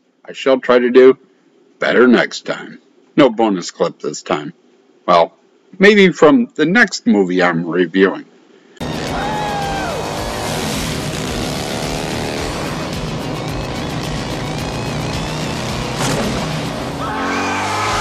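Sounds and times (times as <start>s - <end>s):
action soundtrack music: 8.8s - 18.0s
car engines: 8.8s - 18.0s
gliding whines: 8.8s - 18.0s
tires squealing: 8.8s - 18.0s.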